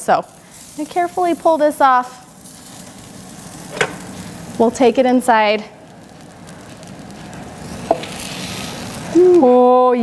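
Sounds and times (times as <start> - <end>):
chicken sizzling and scraping: 0.0 - 9.6.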